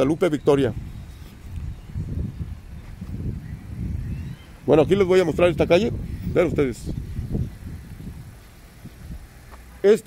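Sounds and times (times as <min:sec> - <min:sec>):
low street rumble: 0:00.0 - 0:10.0
man's voice: 0:04.7 - 0:07.0.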